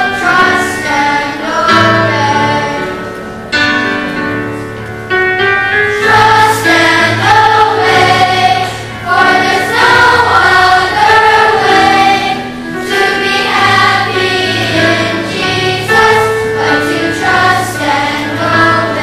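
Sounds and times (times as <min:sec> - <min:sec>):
children's choir singing: 0:00.0 - 0:03.5, 0:05.7 - 0:19.0.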